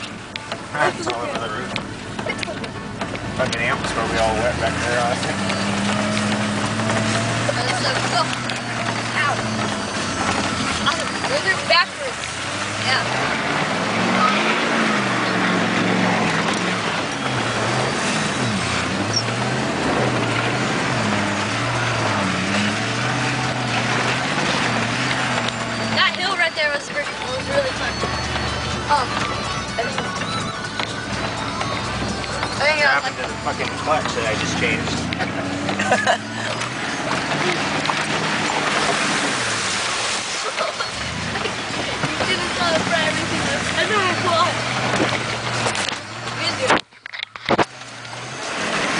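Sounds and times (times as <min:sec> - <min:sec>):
truck engine revving: 0:00.0 - 0:48.9
tyres splashing through mud: 0:00.0 - 0:48.9.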